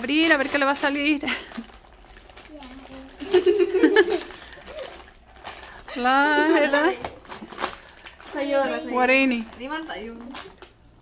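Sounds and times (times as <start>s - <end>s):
foil bags crinkling and rustling: 0.0s - 11.0s.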